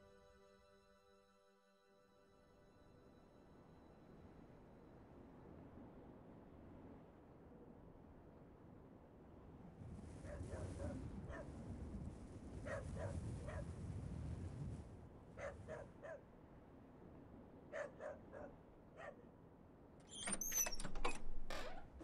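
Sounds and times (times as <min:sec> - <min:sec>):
dog barking: 0:10.2 - 0:11.5, 0:12.6 - 0:13.7, 0:15.4 - 0:16.3, 0:17.7 - 0:19.3.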